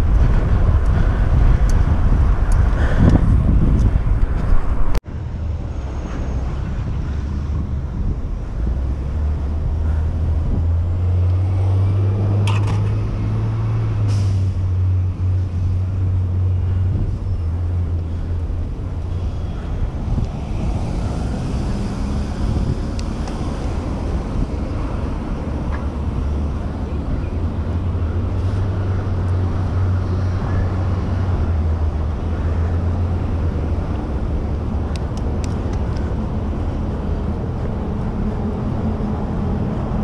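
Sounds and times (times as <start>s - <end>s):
street traffic: 0.0s - 40.0s
vehicle engine hum: 0.0s - 40.0s.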